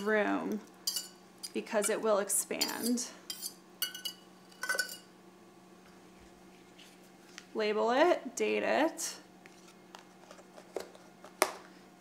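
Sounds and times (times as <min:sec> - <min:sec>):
metallic clinks of saucepan: 0:00.9 - 0:01.2.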